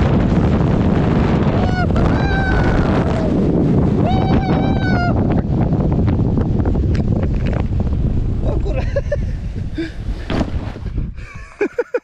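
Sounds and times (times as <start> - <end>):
tube sliding over grass: 0.0 - 11.3
people laughing: 8.5 - 9.4, 11.2 - 12.0.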